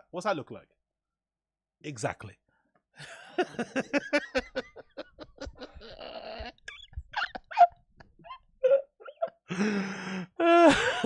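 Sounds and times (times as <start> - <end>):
man laughing hard: 3.0 - 9.7, 10.4 - 11.0.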